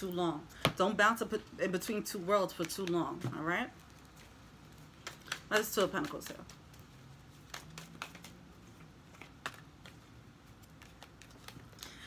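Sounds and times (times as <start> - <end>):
cards clicking and tapping: 2.5 - 3.3, 5.0 - 12.0.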